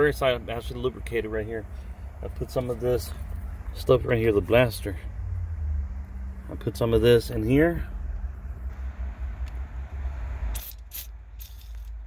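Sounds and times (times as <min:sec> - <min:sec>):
aerosol can spraying: 0:10.5 - 0:11.9.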